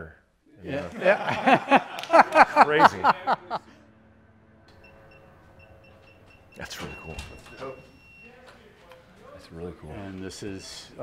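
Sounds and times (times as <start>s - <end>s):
high-pitched electronic beeps: 4.7s - 8.5s.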